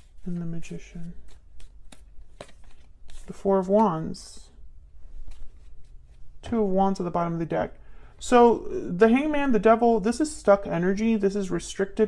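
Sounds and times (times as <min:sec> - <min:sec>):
cards being shuffled: 0:00.0 - 0:03.9, 0:05.1 - 0:06.3.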